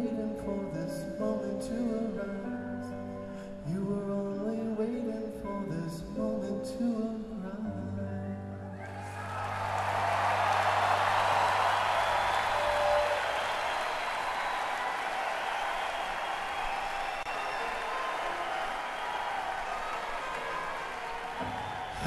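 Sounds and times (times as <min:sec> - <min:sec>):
audience applauding and cheering: 0:08.8 - 0:22.0.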